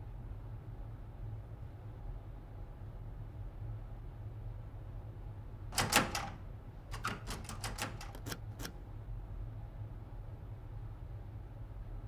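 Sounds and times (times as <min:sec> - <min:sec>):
keyboard typing: 0:05.8 - 0:08.7.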